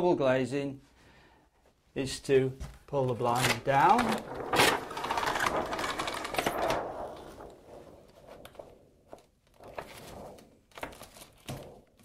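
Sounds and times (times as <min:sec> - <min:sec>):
roller blind rattling: 0:03.9 - 0:07.0.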